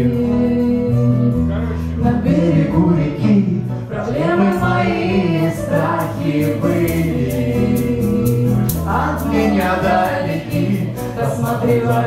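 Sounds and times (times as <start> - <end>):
voices singing together: 0.0 - 12.0.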